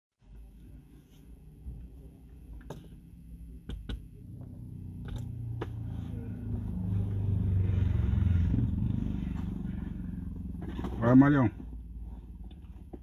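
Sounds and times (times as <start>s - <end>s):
vehicle engine: 0.4s - 13.0s.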